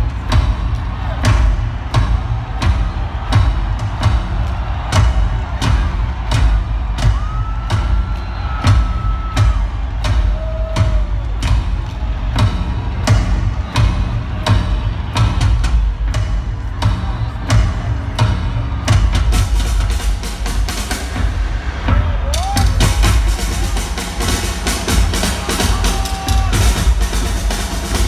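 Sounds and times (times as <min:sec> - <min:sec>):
large drums pounding: 0:00.0 - 0:28.0.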